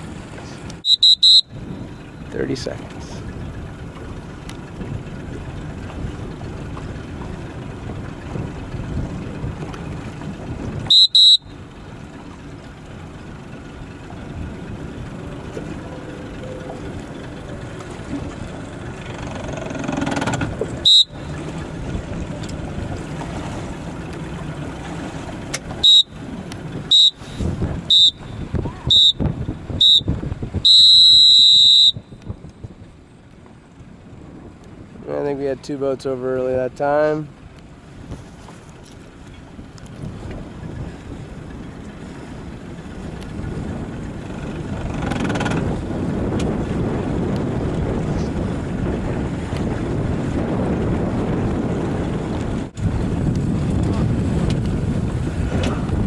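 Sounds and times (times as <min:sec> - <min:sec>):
wind and water rushing: 0:00.0 - 0:56.0
electronic horn beeps: 0:00.8 - 0:01.6, 0:10.9 - 0:11.6, 0:20.8 - 0:21.4, 0:25.8 - 0:26.2, 0:26.9 - 0:27.3, 0:27.9 - 0:29.2, 0:29.8 - 0:32.1.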